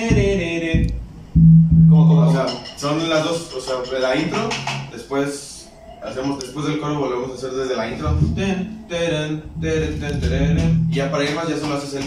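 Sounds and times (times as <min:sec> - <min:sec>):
guitar plucking: 0:00.1 - 0:02.4, 0:09.4 - 0:11.2
held low note: 0:00.1 - 0:02.5, 0:07.9 - 0:11.4.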